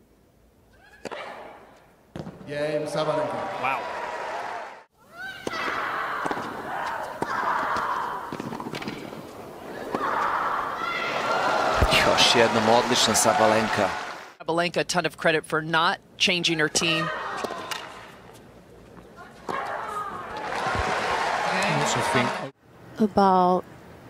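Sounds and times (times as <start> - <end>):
crowd cheering and applause: 2.8 - 4.9, 9.7 - 14.4, 19.7 - 22.6.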